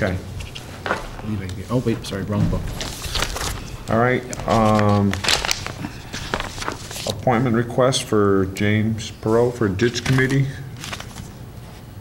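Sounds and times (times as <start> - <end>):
papers rustling: 0.0 - 7.6, 9.8 - 11.9.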